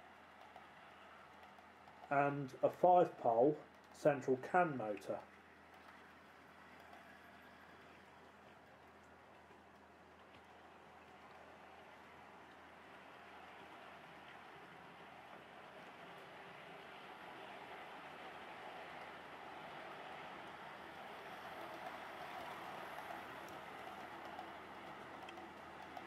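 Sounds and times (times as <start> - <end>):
model train rolling and motor hum: 0.0 - 26.0.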